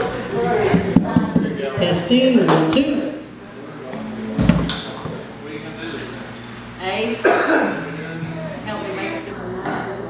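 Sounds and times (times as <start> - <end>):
people talking: 0.0 - 10.0
person coughing: 7.2 - 7.8.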